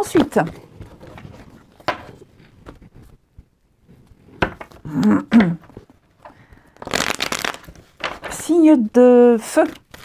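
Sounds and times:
cards riffle-shuffled: 6.8 - 8.3, 9.6 - 10.0.

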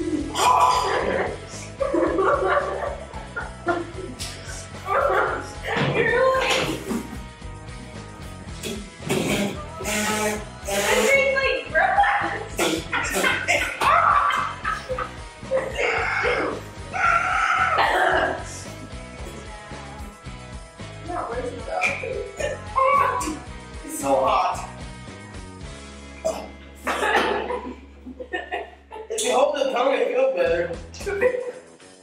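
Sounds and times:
people yelping and gasping: 0.0 - 5.8, 12.3 - 20.1.

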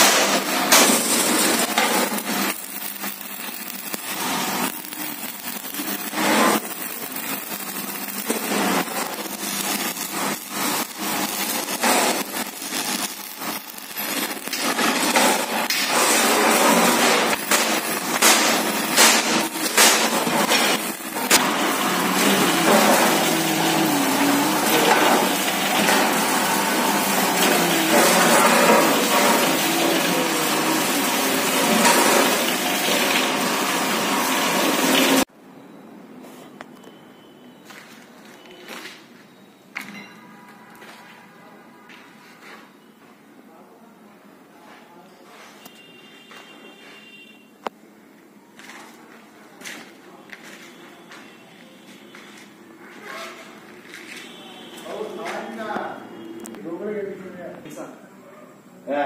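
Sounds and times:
electric arc welding crackling: 0.0 - 35.3
drill boring through steel: 1.1 - 35.3.

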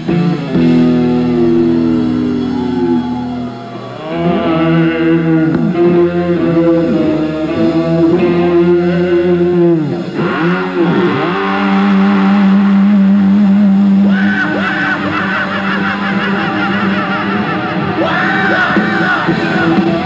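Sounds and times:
distorted electric guitars: 0.0 - 20.0
guitar feedback squealing: 0.0 - 20.0.

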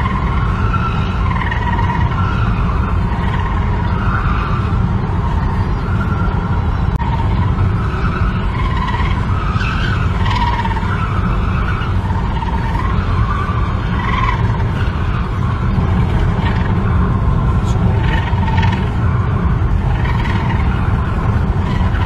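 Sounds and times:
low road rumble: 0.0 - 22.0
wavering wheel squeal: 0.0 - 22.0.

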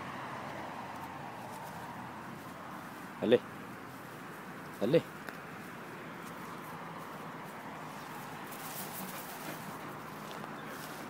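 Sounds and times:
low outdoor background noise: 0.0 - 11.0
light rustles and ticks: 0.5 - 11.0.

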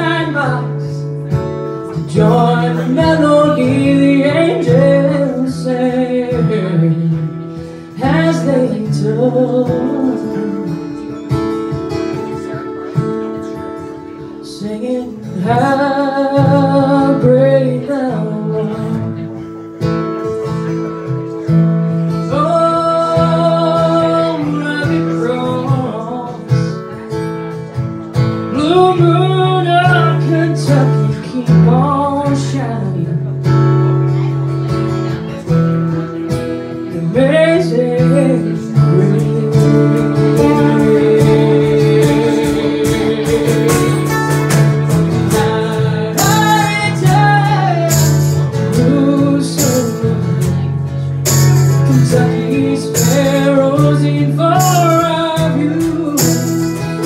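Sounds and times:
person singing: 0.0 - 19.7, 20.6 - 27.0, 28.4 - 34.3, 36.1 - 57.0
strummed acoustic guitar: 0.0 - 57.0.

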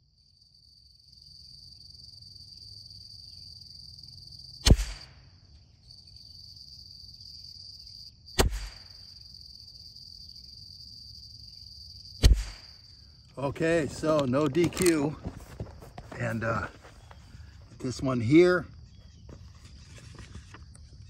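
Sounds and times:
crickets droning: 0.0 - 21.0
rifle shots: 4.6 - 5.2, 8.4 - 9.0, 12.2 - 12.7.

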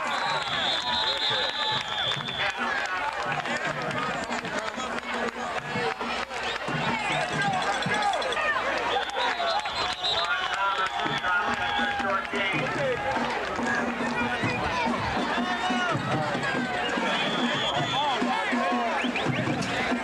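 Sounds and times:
crowd shouting and talking: 0.0 - 20.0.

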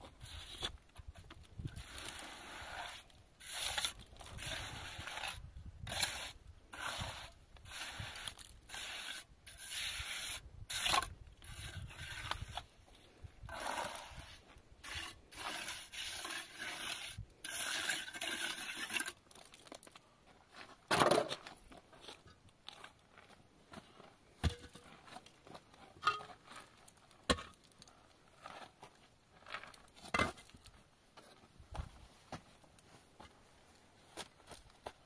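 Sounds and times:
trowel scraping plaster: 0.0 - 12.8, 13.5 - 19.3.

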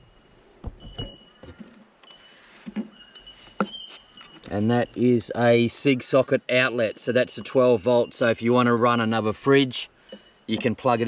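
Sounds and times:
high insect drone: 0.0 - 11.0.

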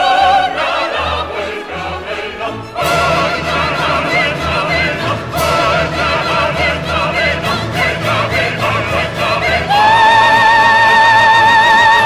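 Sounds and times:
choir and soloists singing: 0.0 - 12.0
orchestra: 0.0 - 12.0.

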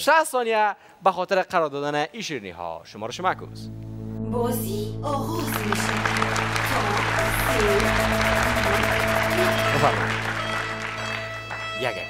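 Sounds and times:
game-show background music: 3.2 - 12.0
audience clapping: 5.3 - 12.0.

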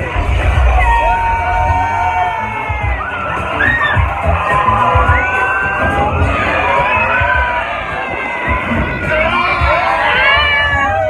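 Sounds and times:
loud ride music: 0.0 - 11.0
riders screaming and whooping: 0.0 - 11.0.

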